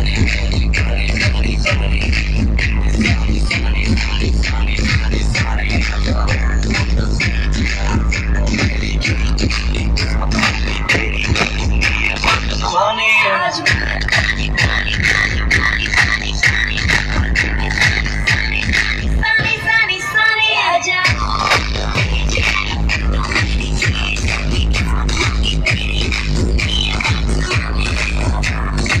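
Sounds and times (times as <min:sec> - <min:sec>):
heavy bass beat: 0:00.0 - 0:20.2, 0:21.0 - 0:29.0
electronic dance music: 0:00.0 - 0:29.0.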